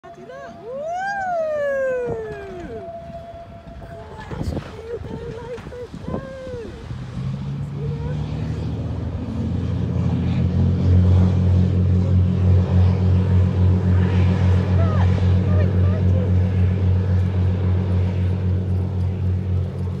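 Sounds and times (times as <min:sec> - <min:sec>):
diesel engines droning: 0:00.0 - 0:20.0.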